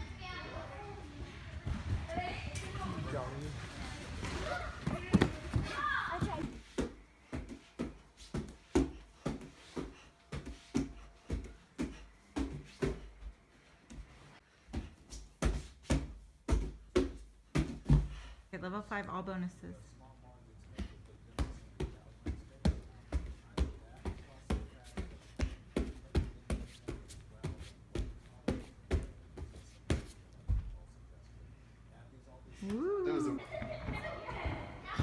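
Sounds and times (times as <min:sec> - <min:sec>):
voices in a gym: 0:00.0 - 0:13.5, 0:17.1 - 0:35.0.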